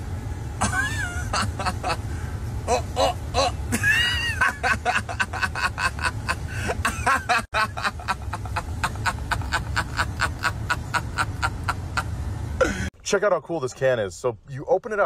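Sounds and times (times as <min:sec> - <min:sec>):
car engine idling: 0:00.0 - 0:14.2
high-pitched rapid laughter: 0:02.7 - 0:12.1.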